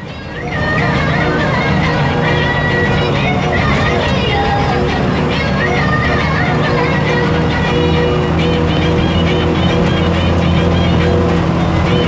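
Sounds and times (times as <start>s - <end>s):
road noise on unpaved road: 0.0s - 12.0s
vehicle engine: 0.0s - 12.0s.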